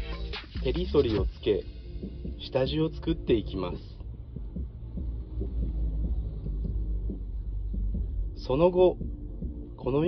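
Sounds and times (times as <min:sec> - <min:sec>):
deep bass pulse music: 0:00.0 - 0:10.0.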